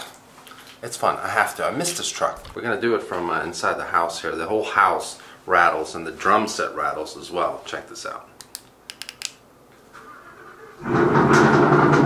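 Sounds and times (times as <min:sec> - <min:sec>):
truck engine cold start: 0:10.0 - 0:12.0.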